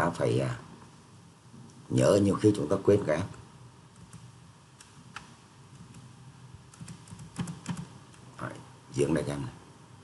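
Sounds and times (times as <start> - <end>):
computer keyboard keystrokes: 4.0 - 6.1, 6.7 - 8.2.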